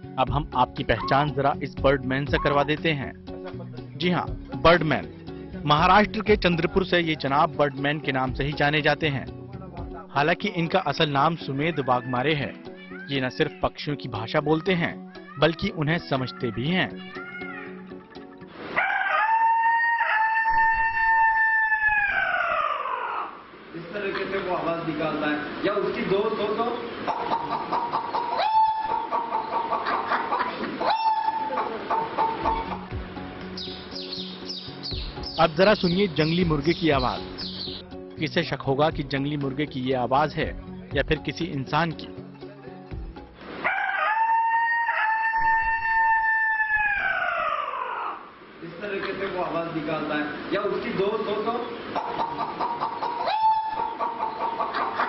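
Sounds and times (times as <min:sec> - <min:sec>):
man imitating rooster crow: 0:18.8 - 0:23.4, 0:28.4 - 0:29.0, 0:30.9 - 0:31.6, 0:43.6 - 0:48.3, 0:53.2 - 0:53.9.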